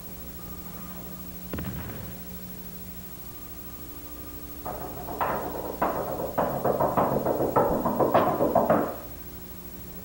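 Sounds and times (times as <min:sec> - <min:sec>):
drum strikes with ringing tail: 0:01.5 - 0:02.5.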